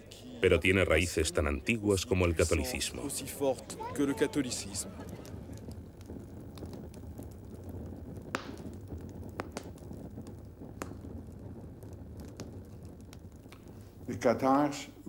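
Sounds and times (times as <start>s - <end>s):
flame crackles: 0.0s - 15.0s
paper burning: 0.0s - 15.0s.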